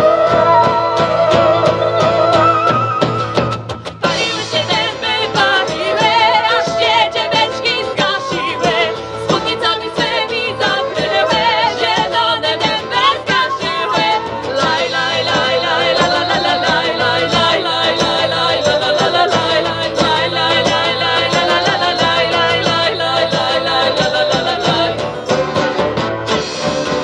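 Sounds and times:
women singing: 0.0s - 3.0s, 4.0s - 25.2s
accordion: 0.0s - 27.0s
acoustic guitars: 0.0s - 27.0s
drum kit beat: 0.0s - 27.0s
flute: 0.0s - 27.0s.

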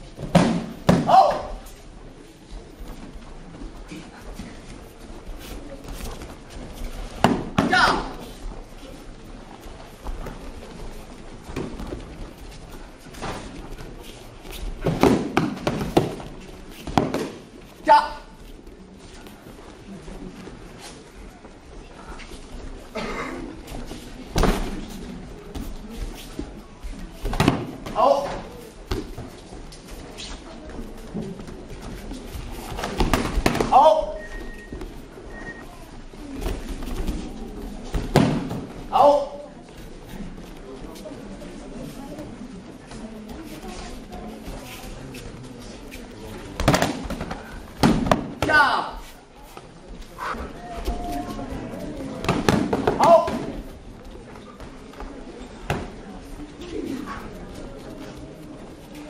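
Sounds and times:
murmuring crowd: 0.0s - 59.0s
foam sticks striking padding: 14.8s - 16.2s
audience voices echoing: 45.9s - 59.0s.

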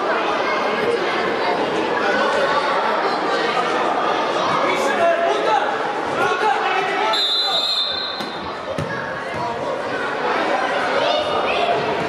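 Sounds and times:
voices echoing in a hall: 0.0s - 12.0s
referee's whistle: 7.1s - 8.4s.

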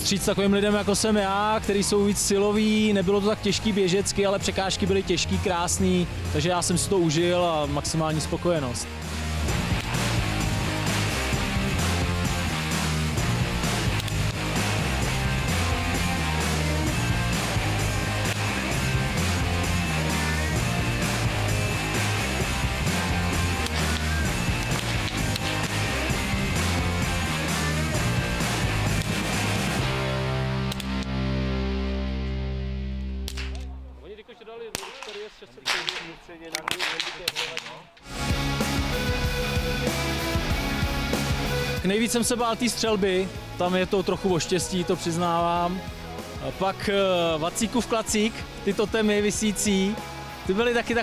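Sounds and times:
music with steady beat: 8.9s - 33.5s, 38.1s - 51.0s.

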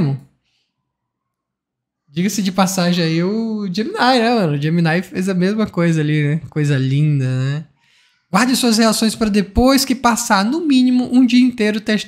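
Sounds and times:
man speaking: 0.0s - 0.2s, 2.2s - 7.7s, 8.3s - 12.0s.

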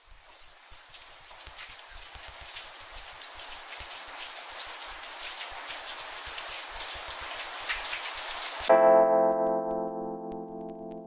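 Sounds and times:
rain falling: 0.0s - 8.7s.

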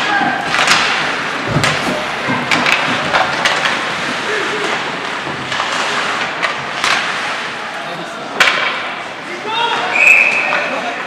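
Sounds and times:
hockey sticks and puck clacking: 0.0s - 7.4s, 8.3s - 11.0s.

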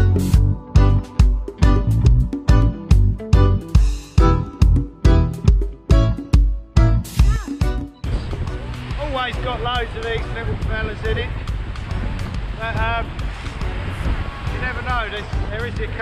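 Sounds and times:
surf washing in: 8.0s - 16.0s
wind buffeting microphone: 8.0s - 16.0s
man talking: 9.0s - 11.4s, 12.6s - 13.2s, 14.5s - 16.0s.

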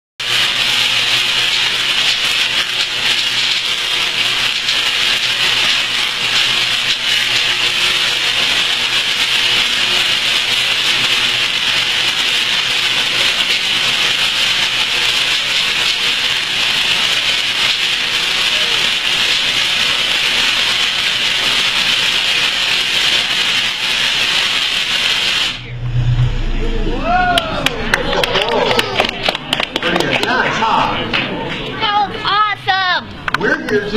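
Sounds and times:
tesla coil buzzing: 0.2s - 28.6s.

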